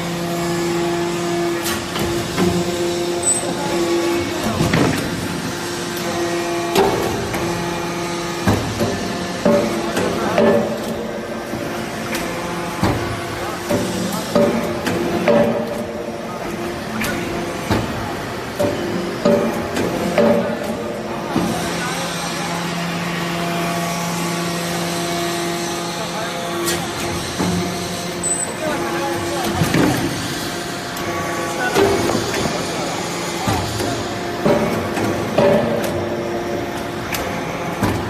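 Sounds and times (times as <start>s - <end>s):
hydraulic unit humming: 0.0s - 38.0s.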